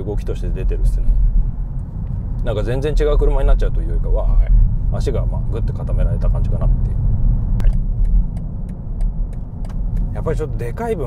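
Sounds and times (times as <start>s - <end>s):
road and tyre rumble in car: 0.0s - 11.0s
sharp click: 7.6s - 10.1s.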